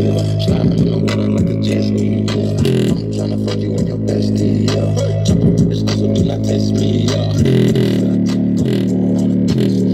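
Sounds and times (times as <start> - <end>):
rap music through speaker: 0.0 - 9.9.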